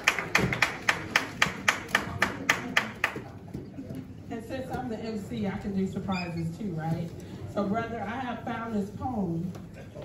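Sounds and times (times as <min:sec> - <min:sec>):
hands clapping: 0:00.0 - 0:03.3.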